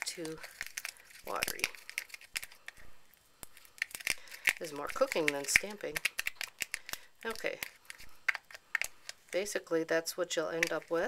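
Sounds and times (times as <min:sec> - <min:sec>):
stirrer clicking and scraping cup: 0:00.0 - 0:02.9, 0:03.6 - 0:09.5, 0:10.6 - 0:11.0.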